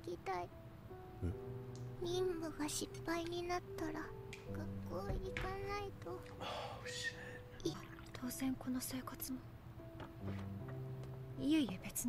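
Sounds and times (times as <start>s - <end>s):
soft background music: 0.0s - 12.0s.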